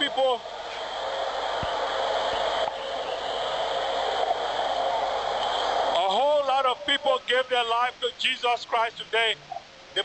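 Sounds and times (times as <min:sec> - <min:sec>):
busy city street hiss: 0:00.0 - 0:10.0.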